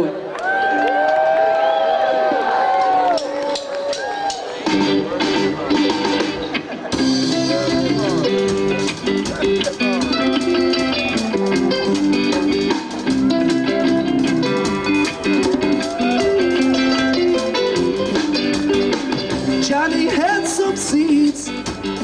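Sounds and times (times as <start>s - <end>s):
guitars with bent notes: 3.1s - 22.0s
live rock band playing: 3.2s - 22.0s.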